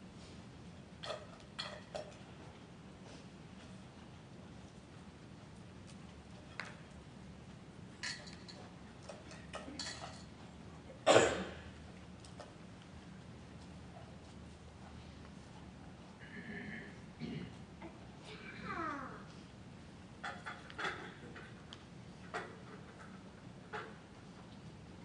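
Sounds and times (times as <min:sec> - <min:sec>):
light clicks and clinks of trays: 0:01.0 - 0:02.2, 0:08.0 - 0:10.4.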